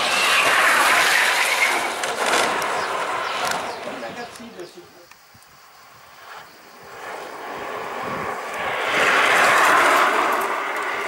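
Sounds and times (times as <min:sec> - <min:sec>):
kart tyres rolling on asphalt: 0:00.0 - 0:11.0.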